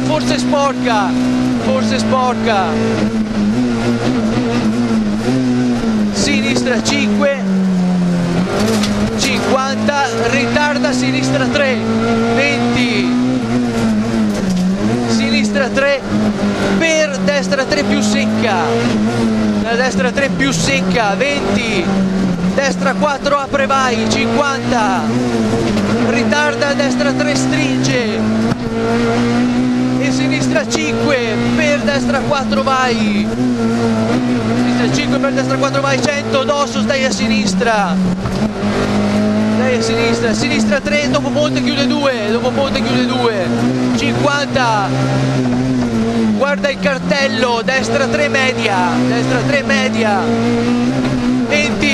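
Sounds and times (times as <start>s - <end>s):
rally car engine running hard: 0.0s - 51.9s.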